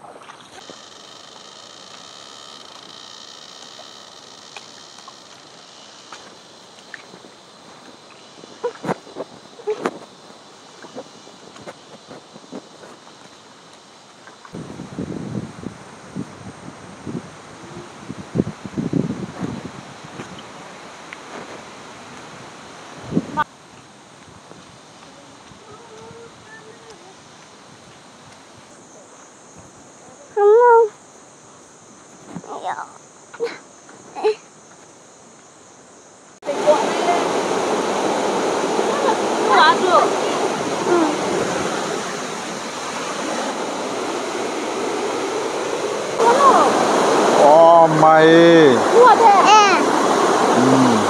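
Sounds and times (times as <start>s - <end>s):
high-pitched buzz: 0.6s - 7.1s, 50.5s - 51.0s
footsteps on leafy dirt path: 6.1s - 13.4s.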